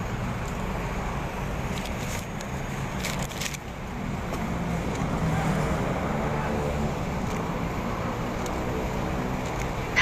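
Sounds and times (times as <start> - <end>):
road traffic engines humming: 0.0 - 10.0.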